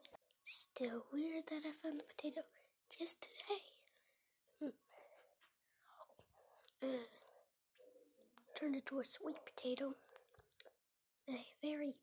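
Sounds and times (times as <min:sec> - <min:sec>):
child whispering: 0:00.4 - 0:03.8, 0:05.8 - 0:07.4.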